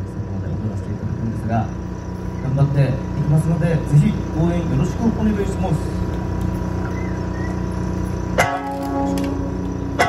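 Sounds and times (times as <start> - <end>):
steady background hum: 0.0 - 10.0
plucked lute note ringing: 8.4 - 10.0.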